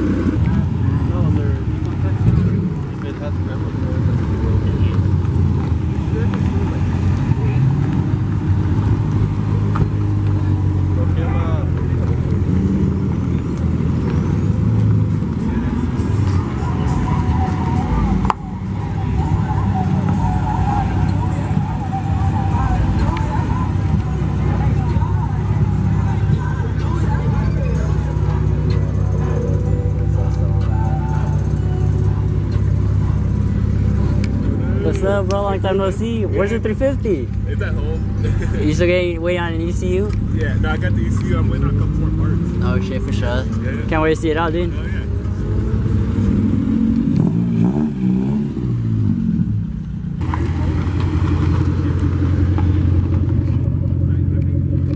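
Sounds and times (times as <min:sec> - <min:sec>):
people talking: 0:00.0 - 0:13.6, 0:15.4 - 0:45.9, 0:53.6 - 0:54.9
car engines running: 0:00.0 - 0:54.9.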